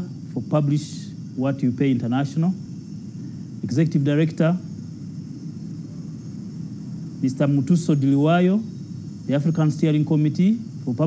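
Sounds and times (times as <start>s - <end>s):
low room rumble: 0.0s - 11.0s.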